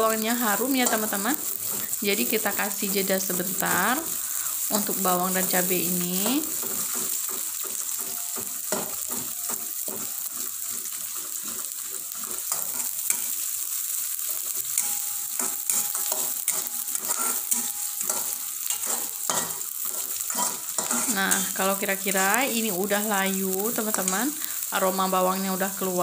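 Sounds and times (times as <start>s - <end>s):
vegetables sizzling in hot oil: 0.0s - 26.0s
metal spatula scraping a pan: 0.2s - 23.0s.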